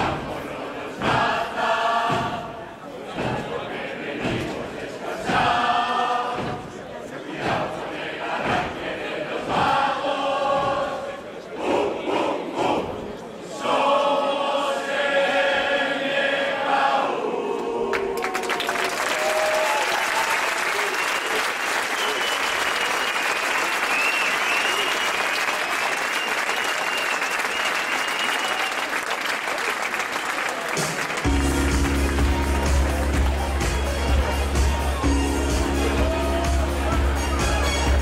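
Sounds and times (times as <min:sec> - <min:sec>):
group of voices singing: 0:00.0 - 0:18.2, 0:31.3 - 0:38.0
crowd applause: 0:17.6 - 0:38.0
whistles and cheers: 0:18.2 - 0:29.2
dance music with heavy bass: 0:31.3 - 0:38.0.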